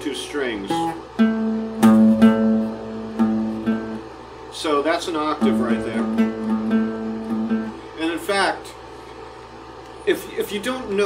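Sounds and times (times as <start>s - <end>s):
acoustic guitar plucks: 0.6s - 4.1s, 5.4s - 7.8s.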